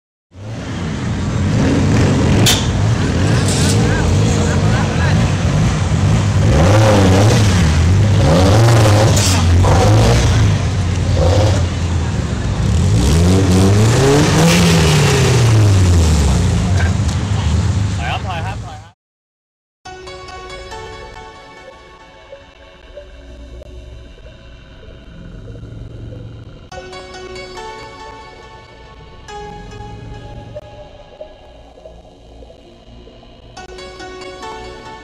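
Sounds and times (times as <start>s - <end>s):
car engine revving: 0.3s - 18.9s, 22.3s - 35.0s.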